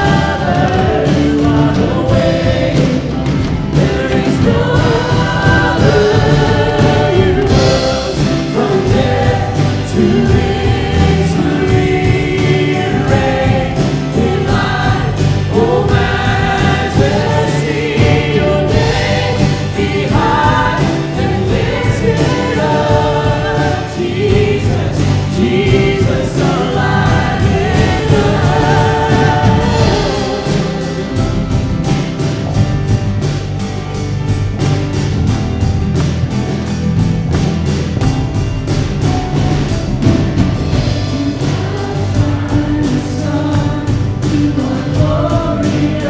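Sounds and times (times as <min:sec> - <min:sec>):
worship band and choir singing: 0:00.0 - 0:46.0.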